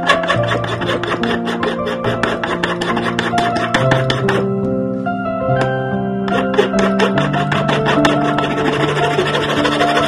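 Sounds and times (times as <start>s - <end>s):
hand file rasping on metal: 0.0s - 4.5s, 6.3s - 10.0s
background music: 0.0s - 10.0s.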